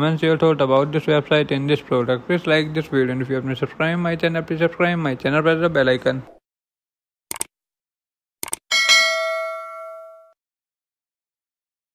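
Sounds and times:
bell ding: 8.7s - 10.4s.

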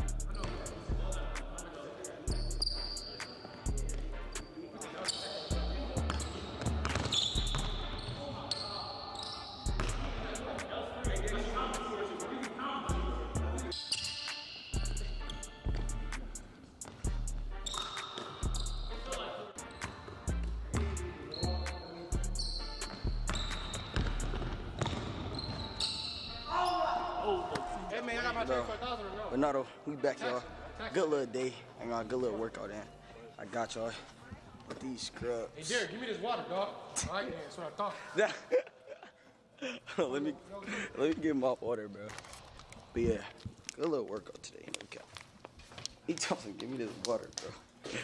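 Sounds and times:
sneaker squeaks: 0.3s - 0.9s, 2.2s - 3.7s, 4.3s - 10.2s, 13.7s - 16.0s, 16.8s - 27.0s
basketballs bouncing on hardwood: 6.0s - 7.8s, 23.1s - 25.7s.

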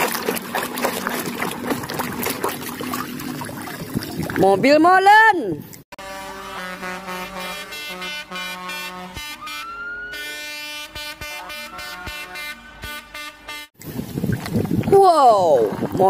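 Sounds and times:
truck air horns: 6.0s - 13.8s
siren-like rising tone: 9.4s - 10.7s, 11.3s - 12.8s.

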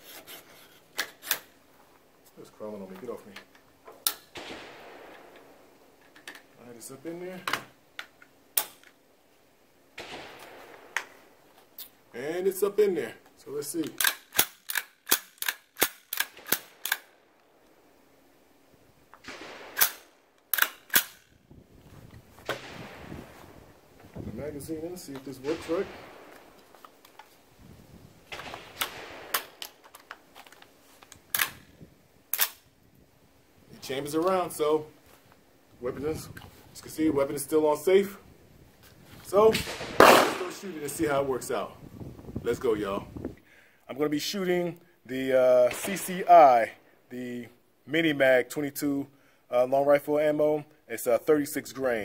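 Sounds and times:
rifle charging handle clacks: 13.8s - 17.1s, 19.8s - 21.2s, 28.4s - 31.7s
sharp metallic clicks: 13.8s - 17.8s, 19.2s - 21.4s, 28.3s - 31.7s, 32.3s - 32.6s.

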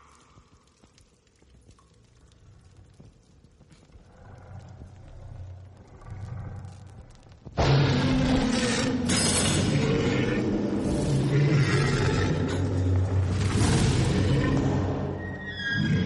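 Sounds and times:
monster roar: 7.6s - 15.1s.

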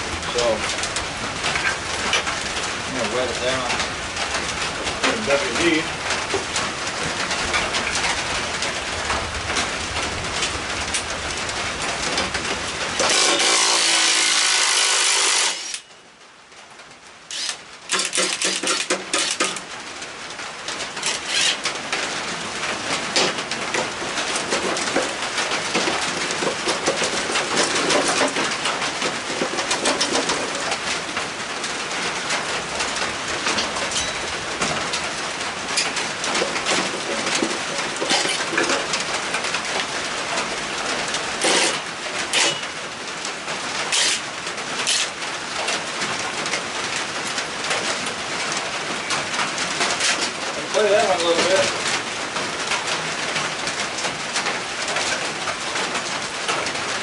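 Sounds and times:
rain pattering on roof: 0.0s - 57.0s
cordless impact driver bursts: 13.0s - 15.8s, 17.3s - 19.4s.

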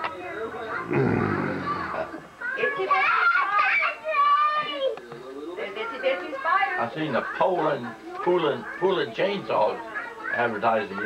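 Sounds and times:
child chattering: 0.8s - 4.9s
throat clearing: 0.9s - 1.6s.

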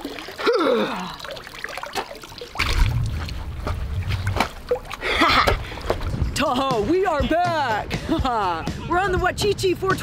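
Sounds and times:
water trickling and splashing: 0.0s - 7.5s
low rumble: 2.6s - 7.0s
woman laughing breathily: 5.0s - 5.9s.

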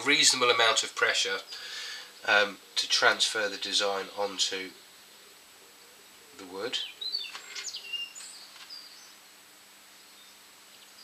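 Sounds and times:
small bird chirping: 1.0s - 9.3s, 9.9s - 11.0s.

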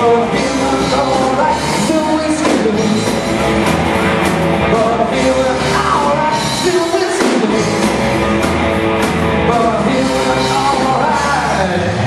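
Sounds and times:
live blues-rock band playing: 0.0s - 12.0s.

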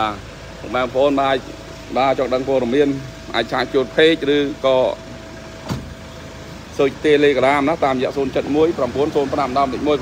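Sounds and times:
man's voice: 0.0s - 5.2s, 6.8s - 10.0s.

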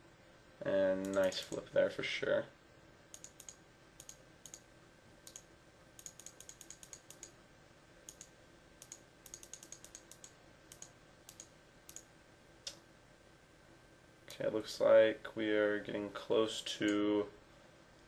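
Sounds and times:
computer mouse clicks: 1.0s - 1.6s, 3.1s - 7.4s, 8.1s - 12.1s.

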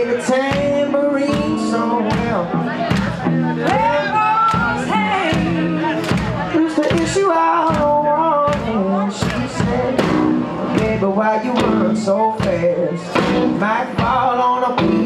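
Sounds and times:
live band with singing: 0.0s - 15.0s
hand claps: 2.9s - 4.8s, 6.0s - 7.9s, 8.5s - 9.6s.

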